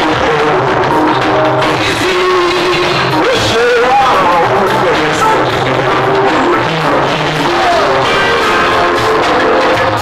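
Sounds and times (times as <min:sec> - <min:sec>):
live band with electronic keyboards: 0:00.0 - 0:10.0.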